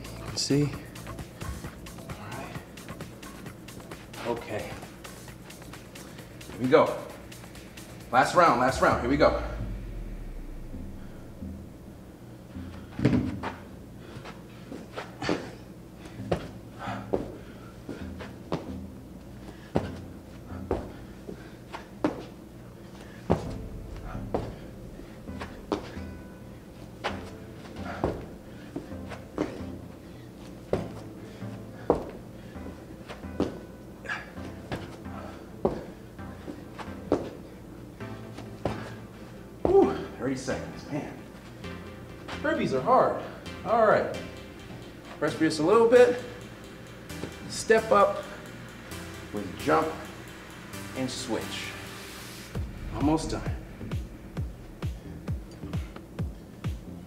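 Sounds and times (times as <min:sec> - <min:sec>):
background music: 0:00.0 - 0:57.0.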